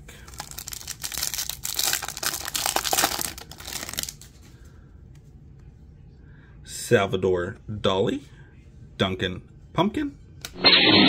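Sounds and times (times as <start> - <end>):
foil wrapper tearing and crinkling: 0.3 - 4.3.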